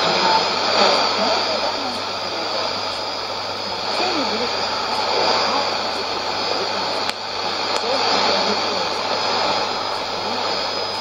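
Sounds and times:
faint voice on radio: 0.0s - 11.0s
radio static noise: 0.0s - 11.0s.

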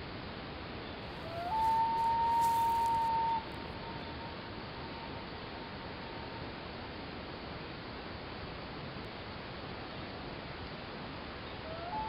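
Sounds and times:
steady hiss: 0.0s - 12.0s
long high tone: 1.2s - 6.6s.

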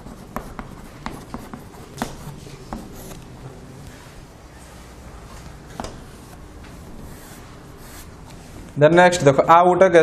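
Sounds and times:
chalk tapping on chalkboard: 0.0s - 3.2s, 7.0s - 8.2s.

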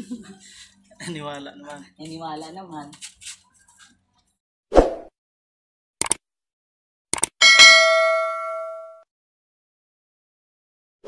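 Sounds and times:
notification bell ding: 7.4s - 9.0s.

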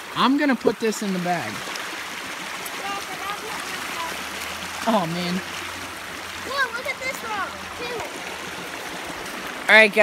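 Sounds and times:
creek water running over rocks: 0.0s - 10.0s.

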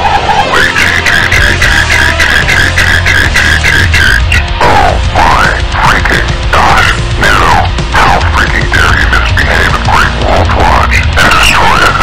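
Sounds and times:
steady low rumble: 0.1s - 12.0s.

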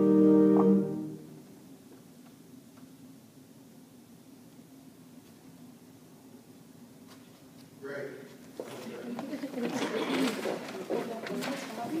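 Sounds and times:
murmur of overlapping voices: 7.9s - 12.0s.

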